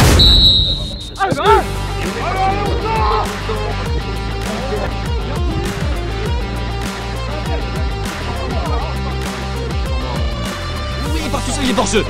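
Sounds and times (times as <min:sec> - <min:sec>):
referee's whistle blast: 0:00.0 - 0:01.4
background music: 0:00.0 - 0:12.0.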